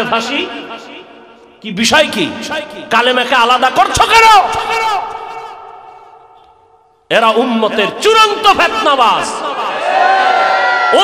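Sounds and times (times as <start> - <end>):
man's voice echoing over loudspeakers: 0.0 - 9.8.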